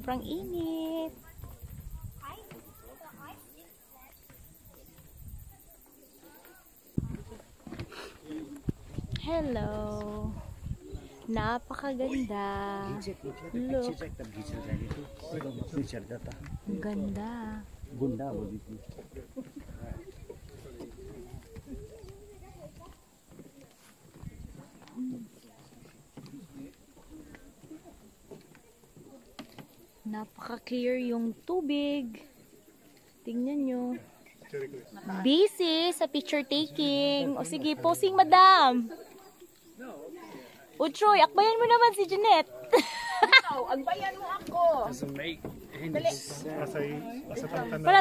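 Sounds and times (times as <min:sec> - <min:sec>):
faint background voices: 0:00.0 - 0:31.5, 0:32.1 - 0:48.0.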